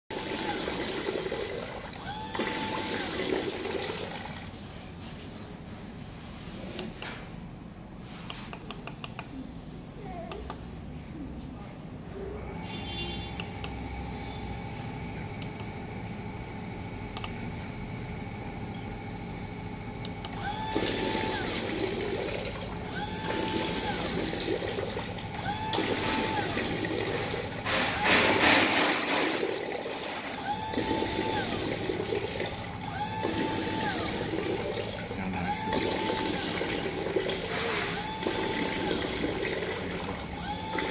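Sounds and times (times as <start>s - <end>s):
pump running: 0.1s - 5.2s, 19.5s - 40.9s
click: 8.3s - 9.3s.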